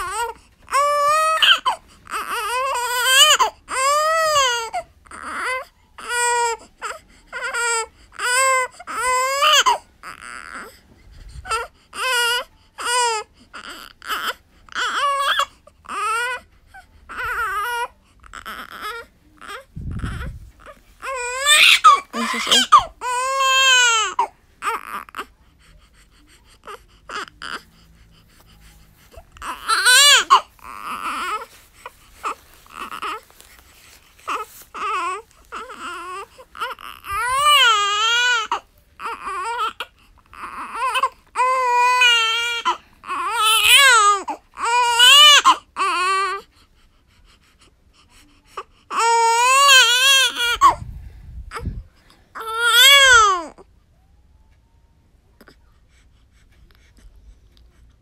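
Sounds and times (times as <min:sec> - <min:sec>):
infant crying: 0:00.0 - 0:10.8, 0:11.5 - 0:25.3, 0:29.2 - 0:31.6, 0:32.2 - 0:33.3, 0:34.3 - 0:46.5, 0:48.6 - 0:50.8, 0:52.4 - 0:53.7.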